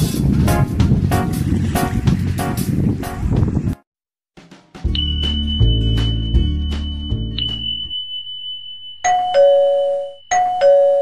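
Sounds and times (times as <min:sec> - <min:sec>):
music with a beat: 0:04.4 - 0:07.9
doorbell ding-dong chime: 0:04.9 - 0:11.0.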